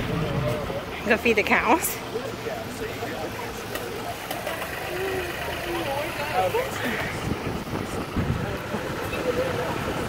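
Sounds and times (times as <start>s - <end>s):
faint voices: 0.0s - 10.0s
tractor engine running: 0.0s - 10.0s.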